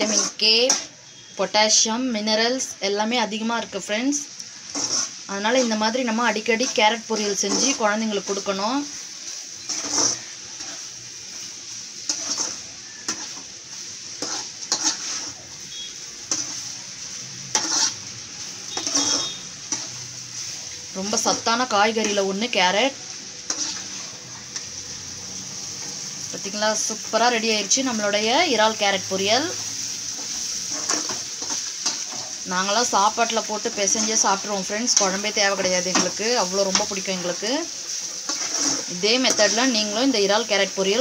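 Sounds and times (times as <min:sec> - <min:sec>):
spatula scraping a pot: 0:00.0 - 0:01.3, 0:04.7 - 0:08.4, 0:09.3 - 0:11.0, 0:12.0 - 0:16.7, 0:17.5 - 0:18.1, 0:18.7 - 0:20.5, 0:23.5 - 0:24.7, 0:30.1 - 0:32.4, 0:37.9 - 0:39.8
food sizzling in a pot: 0:00.0 - 0:41.0.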